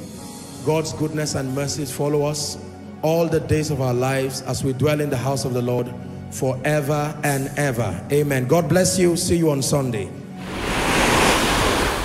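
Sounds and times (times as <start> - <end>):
whoosh: 10.4 - 12.0.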